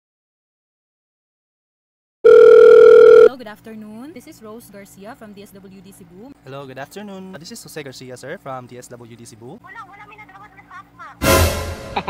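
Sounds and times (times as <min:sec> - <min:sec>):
held telephone tone: 0:02.2 - 0:03.4.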